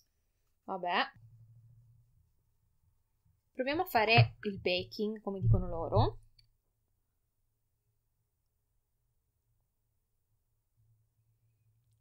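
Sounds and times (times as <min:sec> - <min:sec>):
woman speaking: 0:03.6 - 0:06.2.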